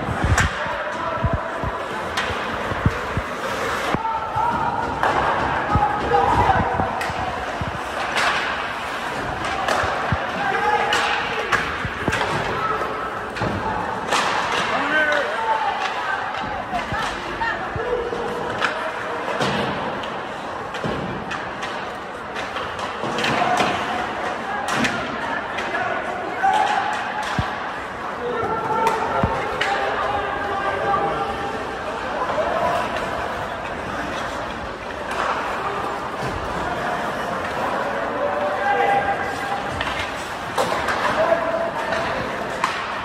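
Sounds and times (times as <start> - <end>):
indistinct voices: 0.0 - 43.0
puck and sticks knocking boards: 0.2 - 12.7, 13.3 - 17.4, 18.5 - 24.0, 26.5 - 27.6, 28.8 - 29.9, 39.7 - 43.0.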